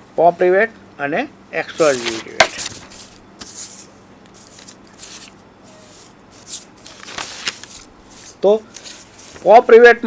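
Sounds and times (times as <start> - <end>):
man speaking: 1.1 - 2.5, 9.4 - 10.0
rustling scraping noise: 1.7 - 9.6.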